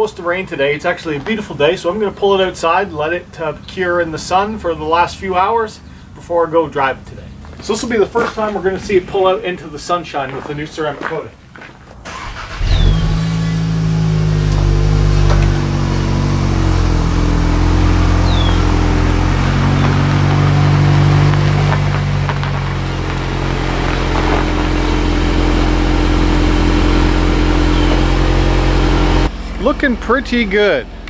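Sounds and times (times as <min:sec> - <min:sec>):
car engine idling: 0:12.1 - 0:31.0.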